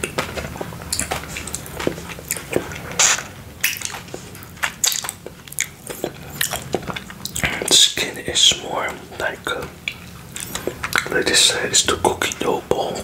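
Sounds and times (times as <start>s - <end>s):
chewing mouth clicks: 0.9s - 7.8s, 9.2s - 11.3s.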